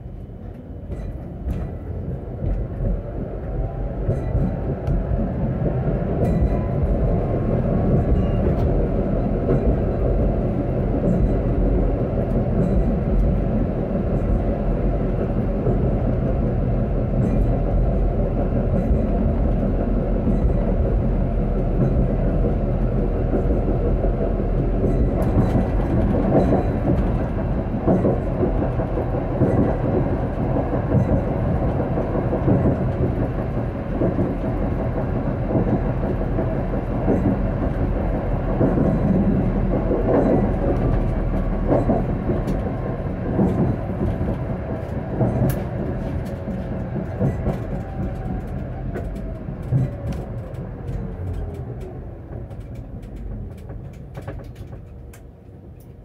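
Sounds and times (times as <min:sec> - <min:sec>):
tram wheels rumbling on rails: 0:00.0 - 0:56.0.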